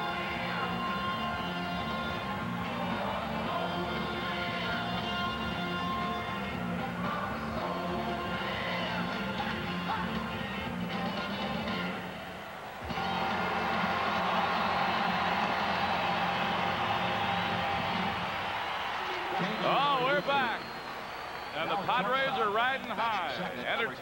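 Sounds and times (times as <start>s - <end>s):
music over stadium speakers: 0.0s - 24.0s
crowd cheering and applauding: 12.0s - 23.2s.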